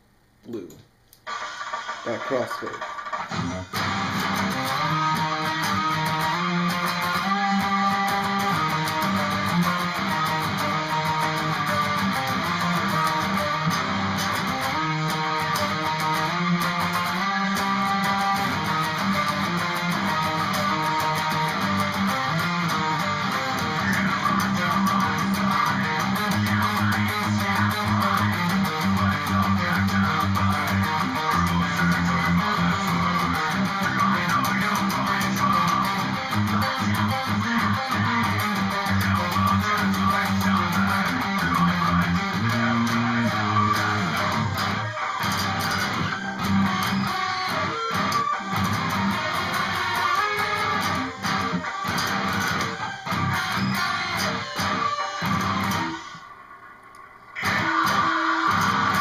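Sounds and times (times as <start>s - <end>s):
electric guitar riffs: 0.5s - 59.0s.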